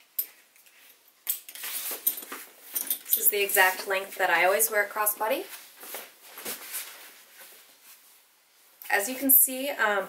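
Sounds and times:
fabric rustling: 1.6s - 8.7s.

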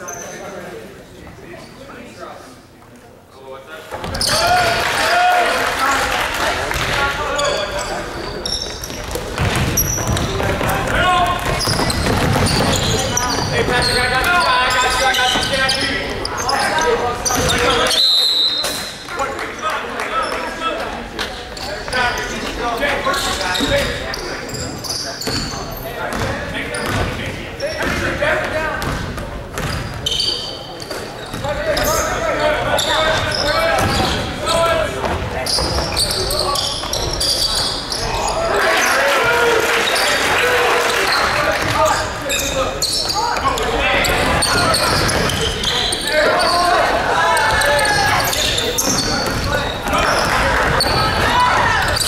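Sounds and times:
basketball bouncing on wooden court: 8.8s - 14.0s, 26.1s - 27.2s, 28.8s - 30.0s, 48.8s - 52.0s
voices calling out: 31.2s - 52.0s.

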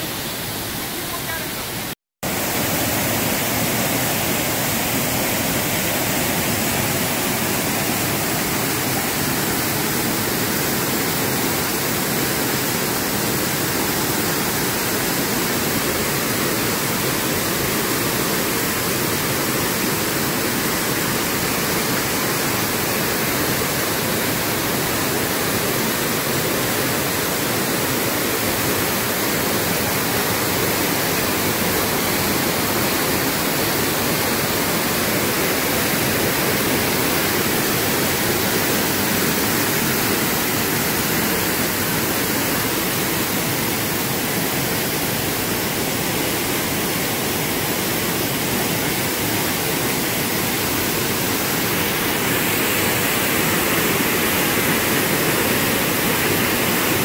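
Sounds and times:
stream rushing over boulders: 0.0s - 57.0s.

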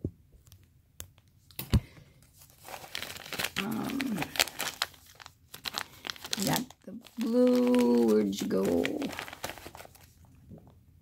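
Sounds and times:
plastic bags crinkling: 2.4s - 10.4s.

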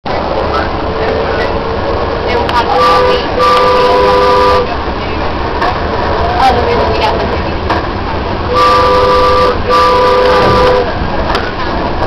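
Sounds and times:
light rail train rumbling: 0.0s - 12.0s.

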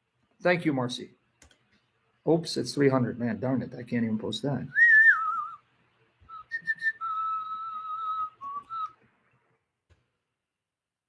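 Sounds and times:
man whistling: 4.7s - 5.7s, 6.3s - 9.0s.

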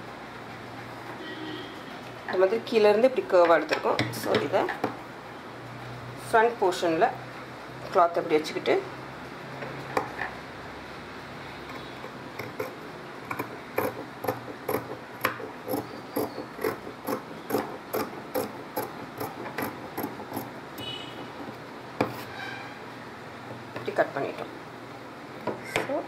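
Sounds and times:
scissors snipping cloth: 12.4s - 20.5s.

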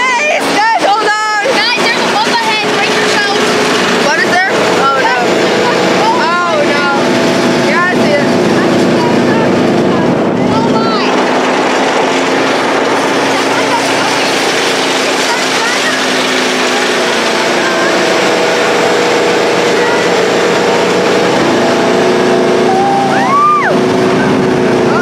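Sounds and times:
tank engine running: 0.0s - 25.0s
tank travel noise: 0.0s - 25.0s.

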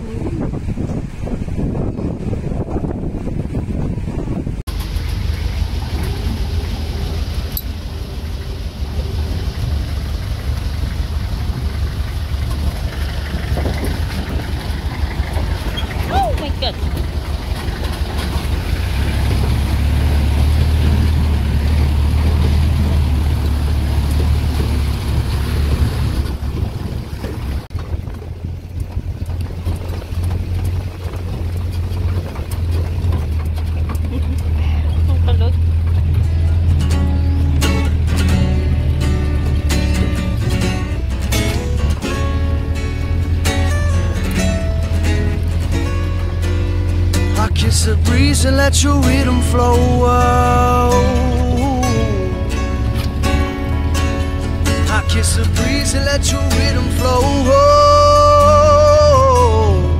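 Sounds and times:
vehicle engine rumble: 0.0s - 59.9s
music playing: 36.2s - 59.9s.

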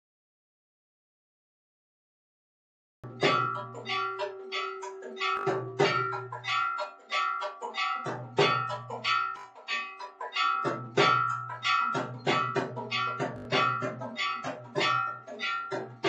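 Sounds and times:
bell-like metallic strikes: 3.0s - 16.0s
ringing tones: 3.1s - 16.0s.

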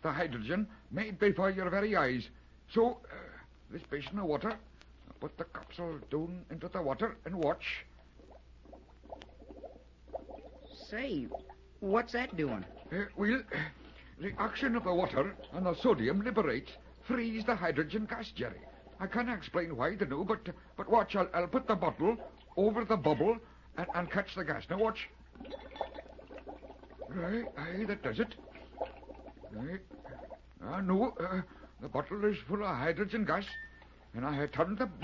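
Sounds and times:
low steady hum: 0.0s - 35.0s
bubbling and popping in water: 3.9s - 35.0s.

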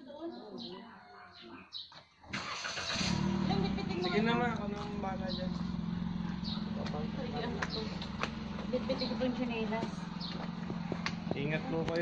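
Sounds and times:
car engine starting and running: 2.3s - 12.0s.

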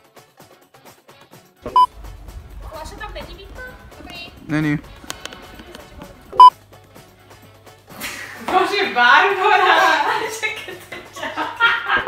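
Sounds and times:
loud electronic beep: 1.6s - 2.0s, 6.2s - 6.6s.

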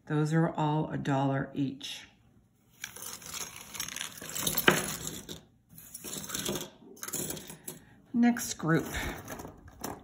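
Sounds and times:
metal brooches scraping and clinking: 2.8s - 7.9s.

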